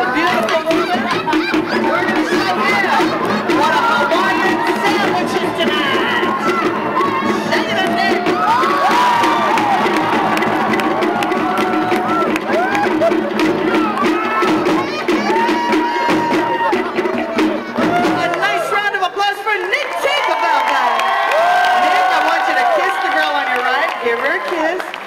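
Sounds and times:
live band music: 0.0 - 19.2
rapid drumming: 0.0 - 24.9
crowd whooping and cheering: 0.7 - 25.0.

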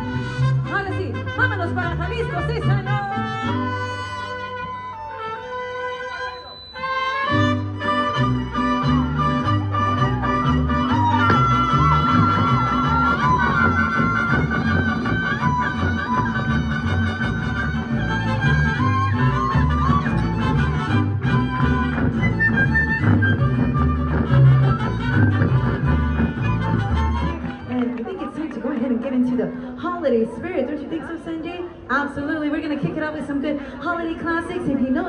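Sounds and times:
trumpets: 0.0 - 21.8
violins: 0.0 - 30.2
guitars: 6.7 - 28.2
rhythmic bass line: 7.2 - 27.7.

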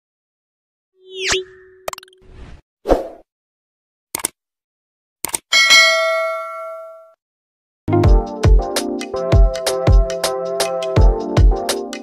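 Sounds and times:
sharp clicks: 4.2 - 4.4, 5.2 - 5.5.

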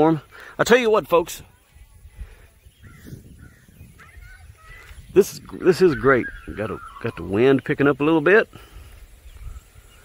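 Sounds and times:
wind rumble on microphone: 1.3 - 7.5, 8.6 - 10.0
faint bird calls: 1.5 - 10.0.

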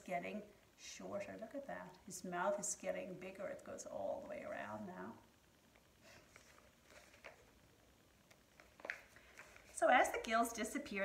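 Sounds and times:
book pages rustling: 6.0 - 7.6, 8.2 - 10.3.

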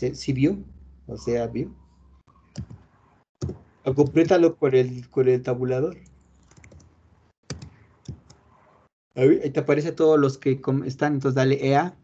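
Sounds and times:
computer keyboard keystrokes: 6.4 - 6.9, 7.5 - 8.4.

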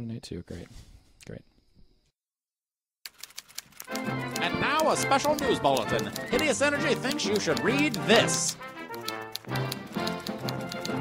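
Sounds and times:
fast teletype-like clicking: 3.1 - 11.0
news jingle music: 3.9 - 11.0.

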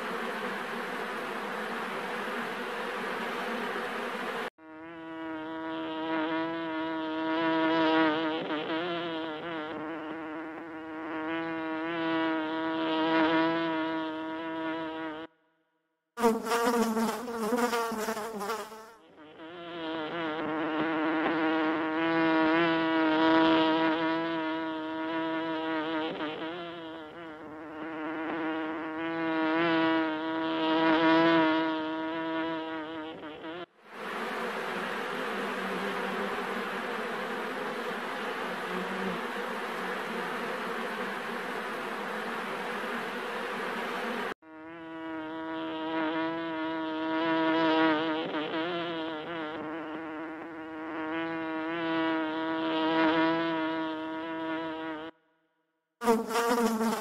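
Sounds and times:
bees buzzing: 0.0 - 15.3, 16.2 - 55.1, 56.0 - 57.0
dense hum of many bees: 0.0 - 15.3, 16.2 - 55.2, 56.0 - 57.0.

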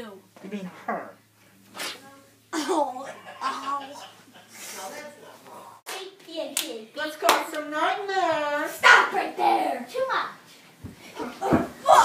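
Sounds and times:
child laughing: 2.5 - 4.5.

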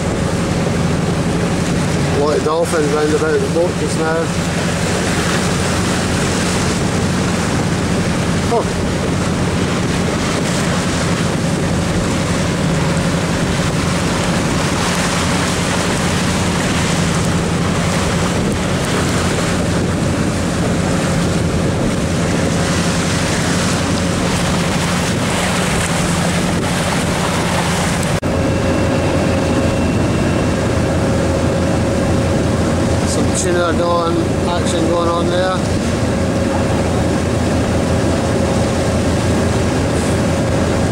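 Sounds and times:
boat engine running: 0.0 - 40.9
water rushing past hull: 0.0 - 40.9
wind buffeting microphone: 0.0 - 40.9.

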